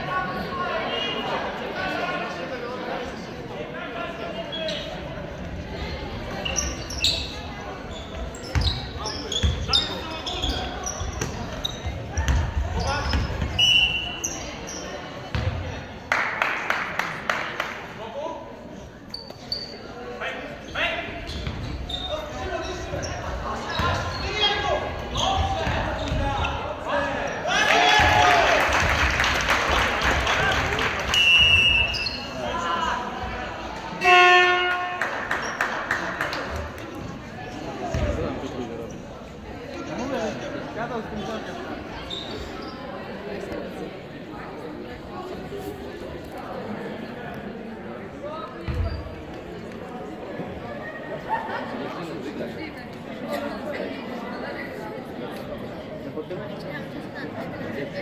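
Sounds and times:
shoes squeaking on court: 0:06.4 - 0:15.6, 0:19.0 - 0:20.0, 0:20.6 - 0:27.4, 0:41.2 - 0:43.1, 0:48.6 - 0:49.5
referee's whistle: 0:13.5 - 0:14.3, 0:31.1 - 0:32.4
loud buzzer horn: 0:34.0 - 0:35.0.

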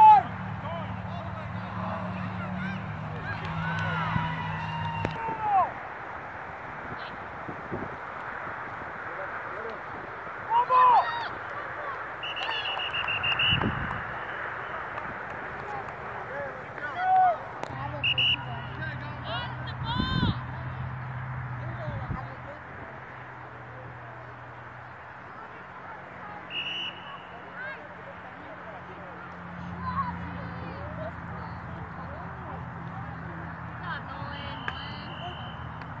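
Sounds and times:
people shouting outdoors: 0:00.0 - 0:06.0, 0:10.3 - 0:15.0, 0:15.6 - 0:20.8, 0:25.9 - 0:28.3, 0:33.8 - 0:36.0
outdoor background noise: 0:00.0 - 0:36.0.

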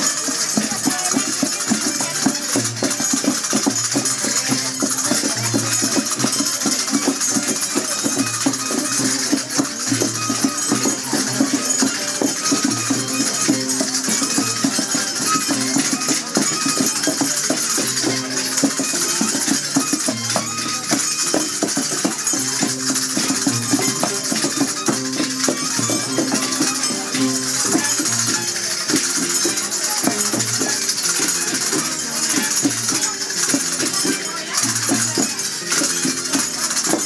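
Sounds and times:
shaken rattling percussion: 0:00.0 - 0:37.0
string instruments melody: 0:00.0 - 0:37.0.

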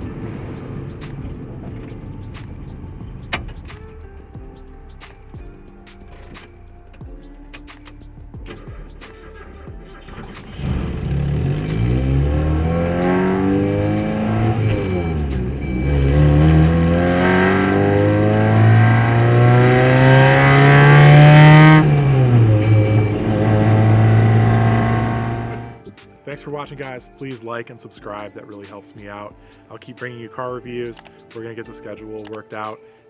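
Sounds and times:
car engine revving: 0:08.5 - 0:25.8.

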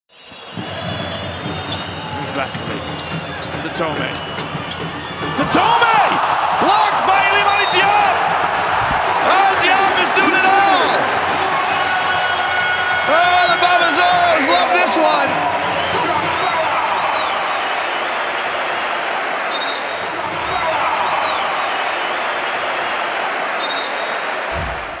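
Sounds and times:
crowd noise: 0:00.1 - 0:25.0
sneakers squeaking on court: 0:04.2 - 0:05.3.

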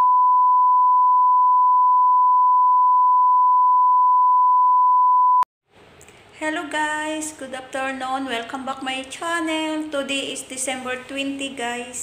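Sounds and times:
steady test tone beep: 0:00.0 - 0:05.4.

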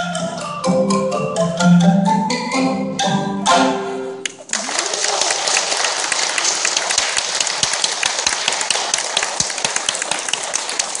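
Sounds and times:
audience applauding: 0:04.5 - 0:11.0.

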